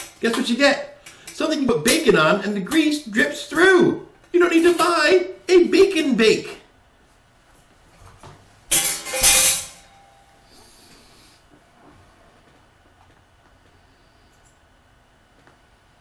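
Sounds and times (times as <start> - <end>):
metal baking sheet clanking: 8.7 - 10.0
metallic ring: 8.7 - 10.4.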